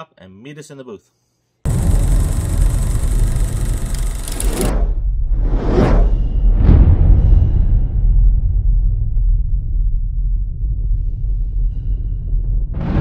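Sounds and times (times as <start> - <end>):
hiss: 1.7 - 4.7
whooshes: 1.7 - 8.9, 10.8 - 13.0
loud low rumble: 1.7 - 13.0.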